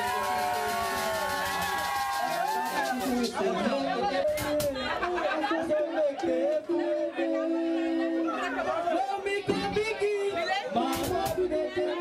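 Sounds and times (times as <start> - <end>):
voices singing and chanting: 2.6 - 12.0.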